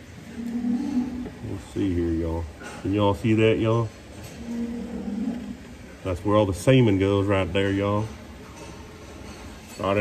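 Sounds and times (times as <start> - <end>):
cow mooing: 0.3 - 1.4, 4.3 - 5.7.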